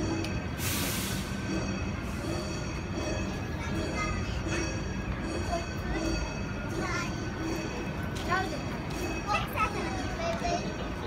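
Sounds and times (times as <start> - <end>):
street rumble: 0.0 - 11.0.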